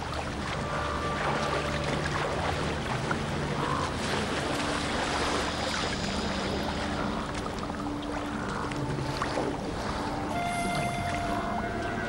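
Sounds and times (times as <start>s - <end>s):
icy water sloshing and churning: 0.0s - 12.0s.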